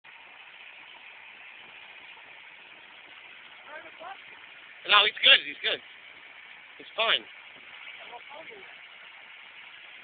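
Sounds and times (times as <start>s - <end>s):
tractor diesel engine running: 0.1s - 10.0s.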